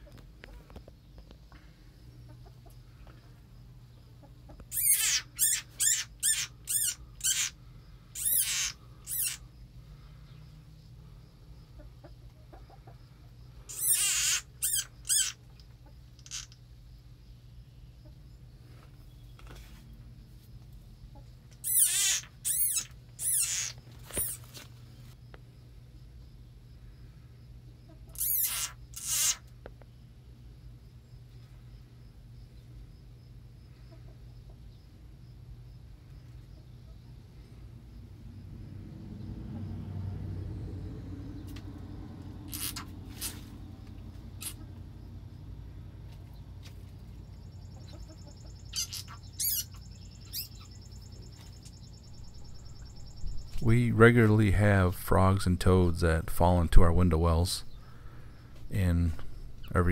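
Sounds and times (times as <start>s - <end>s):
frog distress screams: 4.7s - 9.4s, 13.7s - 15.4s, 16.2s - 16.6s, 21.6s - 24.5s, 28.1s - 29.5s, 42.5s - 43.4s, 44.4s - 44.6s, 48.6s - 50.8s.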